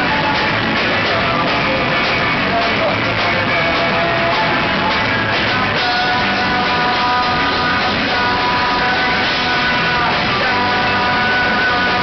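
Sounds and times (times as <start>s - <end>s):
bass guitar: 0.0s - 12.0s
drums: 0.0s - 12.0s
electric guitars ringing: 0.0s - 12.0s.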